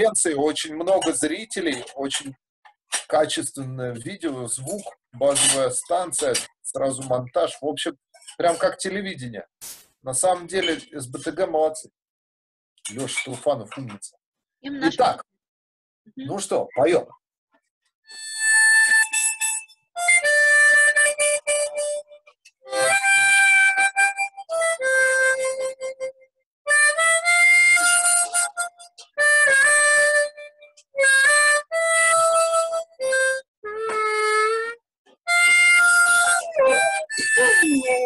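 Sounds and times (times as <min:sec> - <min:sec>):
harmonica playing: 0:18.1 - 0:38.0.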